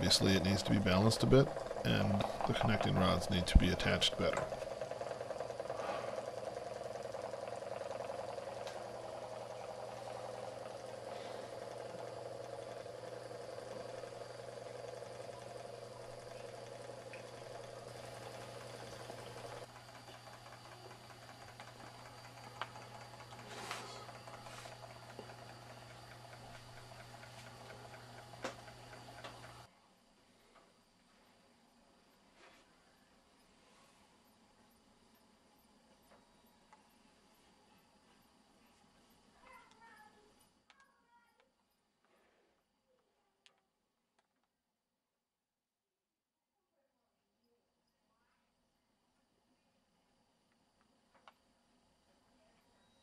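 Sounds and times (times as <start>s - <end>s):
engine whirring rattle: 0.0s - 29.7s
low steady hum: 0.0s - 40.4s.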